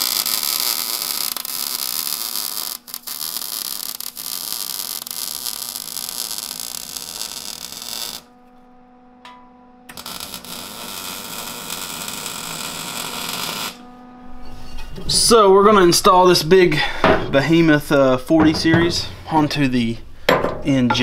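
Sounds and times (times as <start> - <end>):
welder arc crackling: 0.0 - 14.3.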